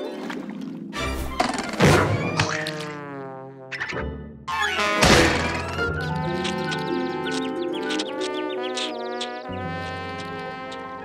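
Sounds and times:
cartoon music: 3.8 - 11.0.

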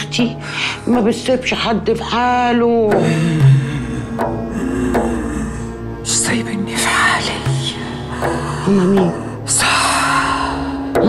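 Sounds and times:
low music drone: 0.0 - 11.0.

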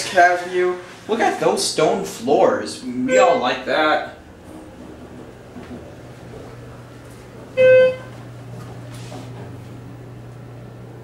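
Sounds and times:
low hum in elevator cab: 0.0 - 11.0
elevator electronic chime: 3.1 - 3.8, 7.6 - 8.2.

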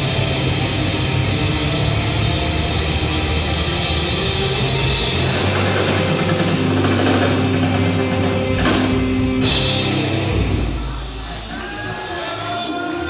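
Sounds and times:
drum kit: 0.0 - 13.0
electric guitar: 0.0 - 13.0.

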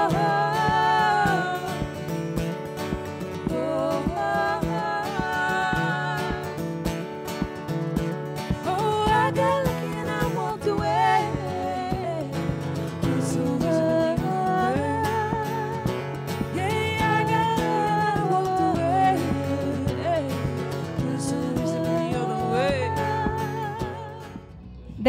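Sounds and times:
women singing: 0.0 - 7.6, 8.4 - 25.0
acoustic guitar strummed: 0.0 - 25.0.

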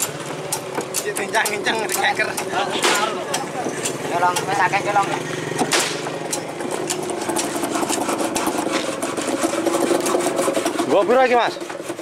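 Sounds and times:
equipment knocking and clattering: 0.0 - 4.6, 5.5 - 9.4
engine idling: 0.0 - 11.0.

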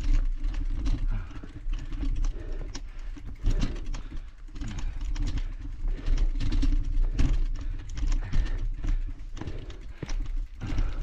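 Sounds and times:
bicycle knocks and rattles: 0.0 - 11.0.

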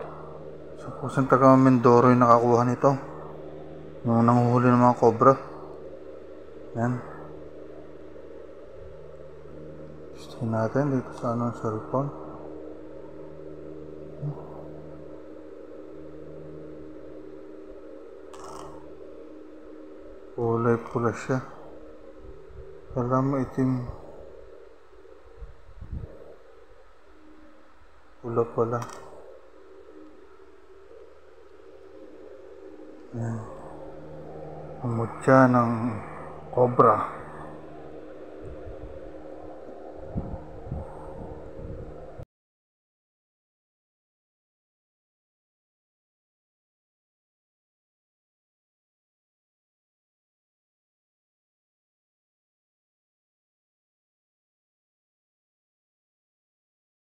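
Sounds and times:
low background hum: 0.0 - 42.2
low rumbling: 0.0 - 42.2.

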